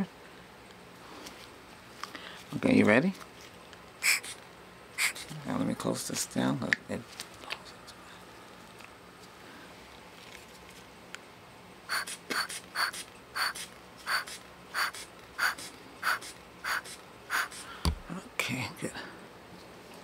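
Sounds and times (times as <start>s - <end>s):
short breathy puffs of air: 4.0s - 4.4s, 5.0s - 5.3s, 11.9s - 18.0s.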